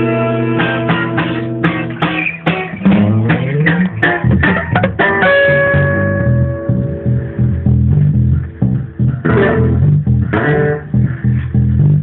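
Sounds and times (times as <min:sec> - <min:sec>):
acoustic guitar low notes: 0:00.0 - 0:12.0
strummed guitar chords: 0:00.0 - 0:12.0.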